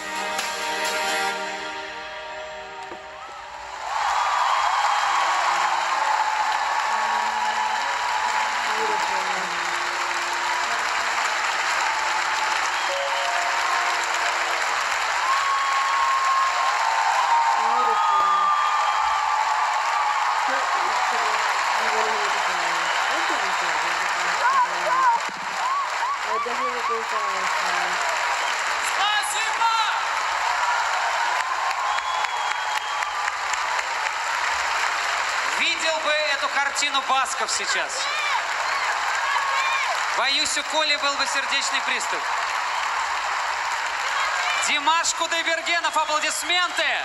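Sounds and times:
live song: 0:00.0 - 0:03.4, 0:09.6 - 0:15.8
audience applauding: 0:02.8 - 0:47.0.

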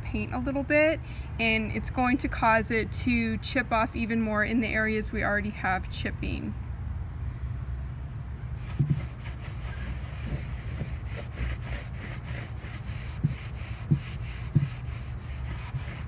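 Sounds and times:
low thumps: 0:08.6 - 0:11.6, 0:12.9 - 0:15.0
cloth scrubbing wooden tabletop: 0:08.6 - 0:16.0.

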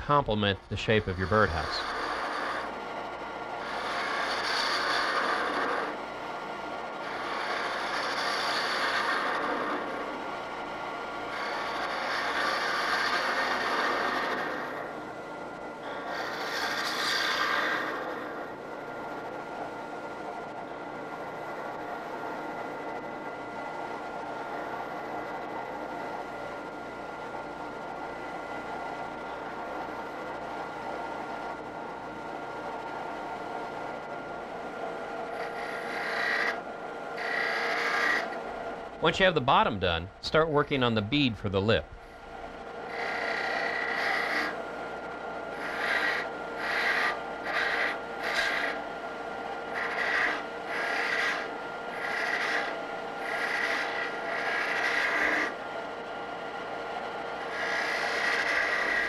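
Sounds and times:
lathe running: 0:00.0 - 0:19.7, 0:20.7 - 0:31.6, 0:32.8 - 0:41.3, 0:42.0 - 0:59.0
gouge cutting wood on lathe: 0:01.0 - 0:02.8, 0:03.6 - 0:06.0, 0:07.0 - 0:10.1, 0:11.3 - 0:15.0, 0:15.8 - 0:18.5, 0:35.3 - 0:36.6, 0:37.2 - 0:38.4, 0:42.8 - 0:44.6, 0:45.5 - 0:48.8, 0:49.7 - 0:55.6, 0:57.4 - 0:59.0.

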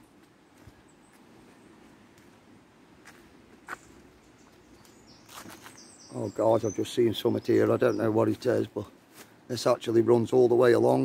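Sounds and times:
footsteps in undergrowth: 0:00.0 - 0:06.4, 0:07.5 - 0:09.6.

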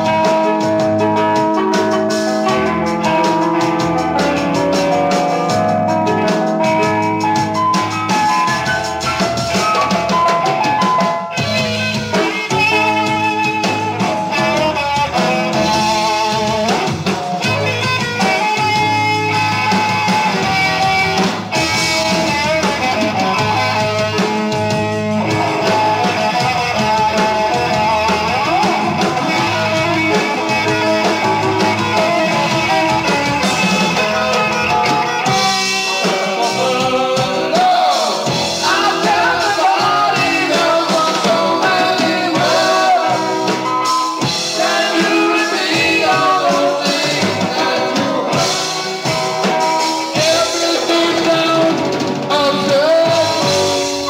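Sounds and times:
drum kit: 0:00.0 - 0:54.0
electric guitar: 0:00.0 - 0:54.0
lead vocal singing: 0:11.7 - 0:18.4, 0:25.2 - 0:54.0.

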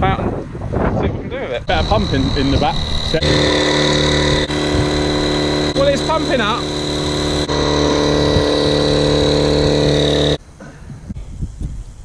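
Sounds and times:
electric inflator pump humming: 0:01.7 - 0:10.4.

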